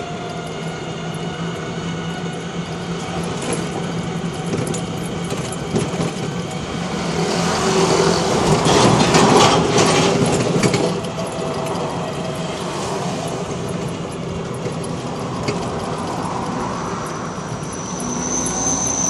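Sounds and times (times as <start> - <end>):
road and body rattle: 0.0 - 19.0.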